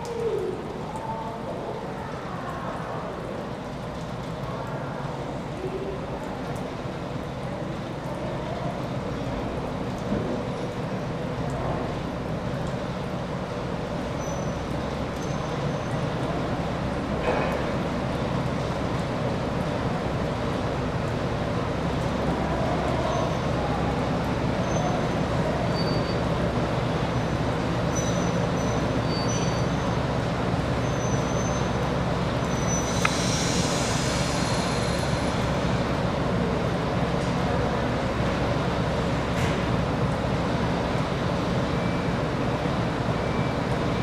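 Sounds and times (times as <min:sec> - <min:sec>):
diesel railcar engines running: 0:00.0 - 0:44.0
air hissing: 0:32.7 - 0:35.6.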